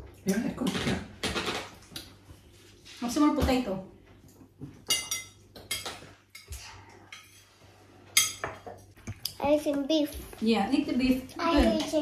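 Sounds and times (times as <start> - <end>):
cutlery clinking on plates: 4.3 - 9.2.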